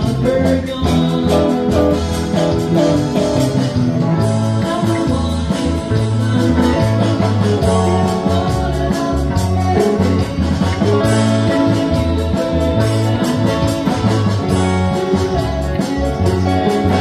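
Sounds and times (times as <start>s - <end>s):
live band playing pop song: 0.0s - 17.0s.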